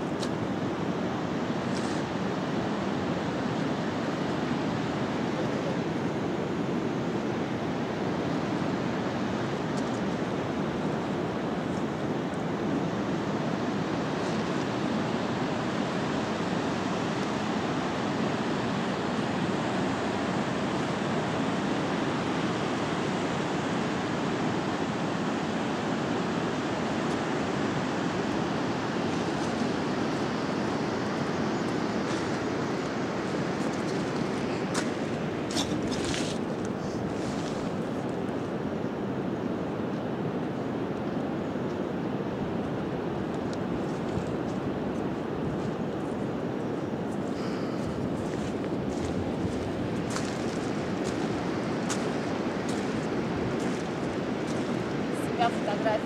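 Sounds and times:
river rushing over stones: 0:00.0 - 0:39.3, 0:44.1 - 0:56.0.

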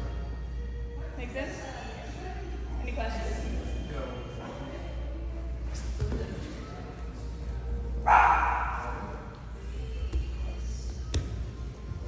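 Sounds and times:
dog bark: 0:08.0 - 0:09.0.

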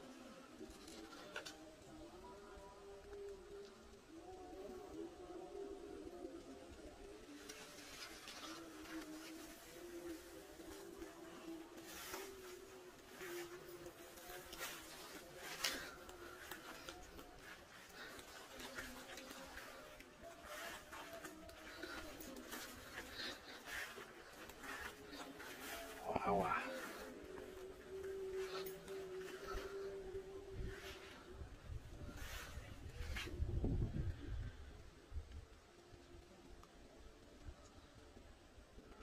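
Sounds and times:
faint distant music: 0:00.0 - 0:39.0
footsteps in grass and leaves: 0:07.2 - 0:33.4.

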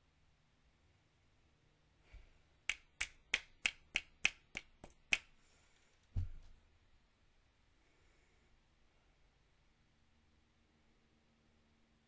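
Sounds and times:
dull thump: 0:06.2 - 0:06.6.

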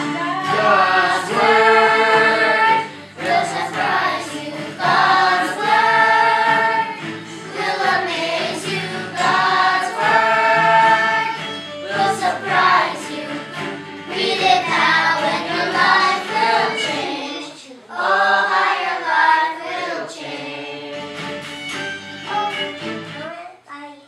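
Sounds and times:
children singing together: 0:00.0 - 0:21.2.

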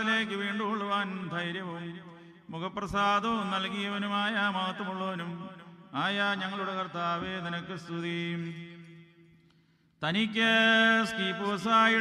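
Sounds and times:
man chanting a hymn: 0:00.0 - 0:09.1, 0:10.0 - 0:12.0.

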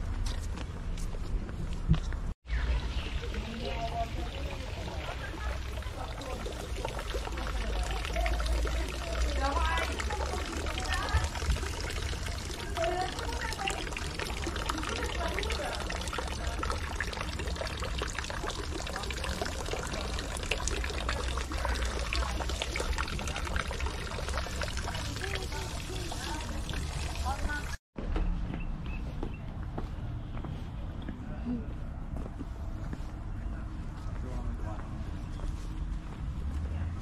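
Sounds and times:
water trickling into stone basin: 0:02.5 - 0:27.8.

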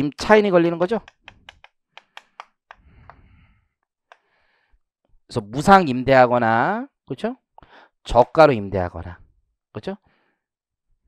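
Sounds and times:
chalk tapping on chalkboard: 0:01.0 - 0:03.2.

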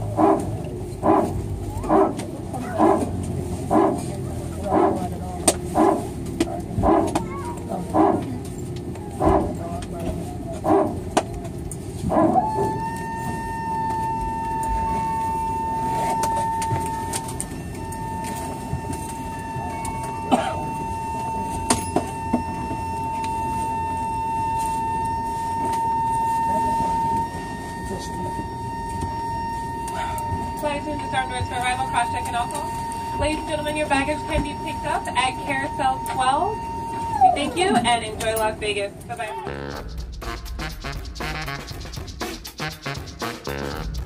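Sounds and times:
hydraulic barking: 0:00.0 - 0:08.4, 0:09.1 - 0:09.6, 0:15.0 - 0:23.6
steady high whine: 0:00.0 - 0:44.0.

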